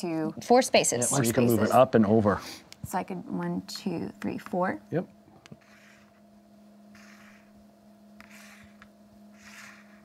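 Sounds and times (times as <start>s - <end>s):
low electrical hum: 0.0s - 10.0s
game pieces sliding on board: 5.6s - 6.2s, 7.0s - 7.5s, 8.2s - 10.0s.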